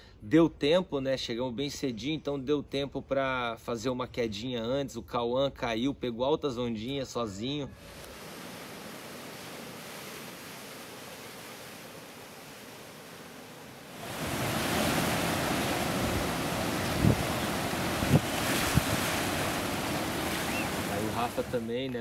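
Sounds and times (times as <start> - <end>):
ocean surf breaking: 7.8 - 22.0
wind on microphone: 14.0 - 21.6.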